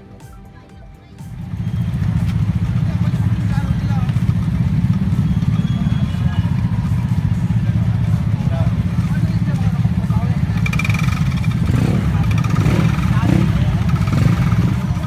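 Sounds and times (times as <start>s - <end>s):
motorcycle engines idling: 0.0s - 15.0s
people chattering: 0.0s - 15.0s.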